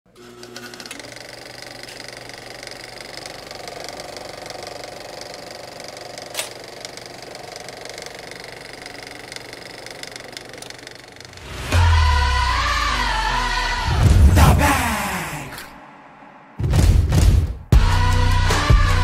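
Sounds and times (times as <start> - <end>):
film projector clatter: 0.2 - 11.4.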